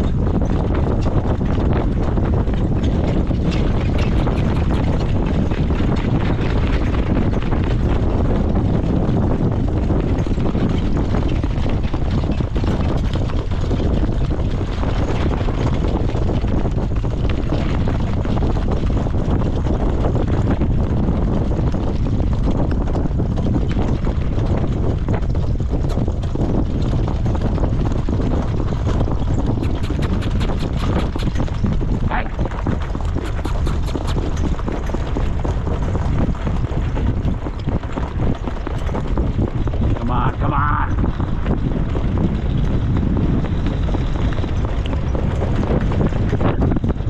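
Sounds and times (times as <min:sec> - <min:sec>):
cart clicks and rattles: 0:00.0 - 0:47.0
hooves on dirt track: 0:00.0 - 0:47.0
wind rushing over microphone: 0:00.0 - 0:47.0.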